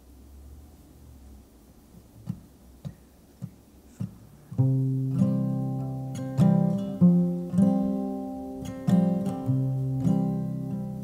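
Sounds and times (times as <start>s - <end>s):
soft taps counting in: 2.0s - 4.2s
acoustic guitar chord strummed: 4.0s - 11.0s.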